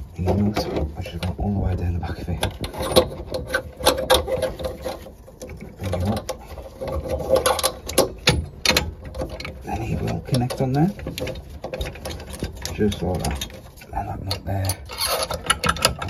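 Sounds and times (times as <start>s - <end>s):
metal parts clicking and knocking: 0.2s - 16.0s.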